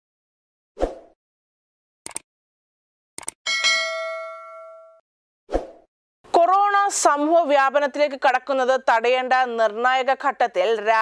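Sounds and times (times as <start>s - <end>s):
bell-like notification chime: 3.5s - 5.0s.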